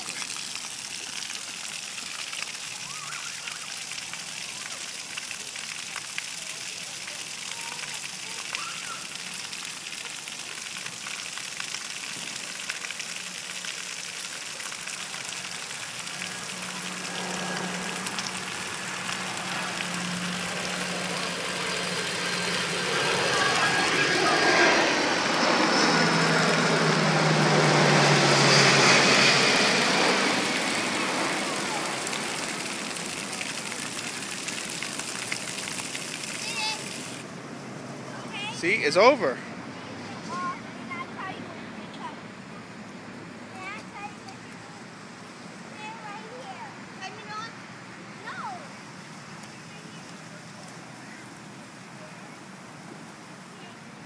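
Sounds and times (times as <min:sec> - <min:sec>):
fountain jets spraying: 0:00.0 - 0:54.0
vehicle passing by: 0:15.5 - 0:41.8.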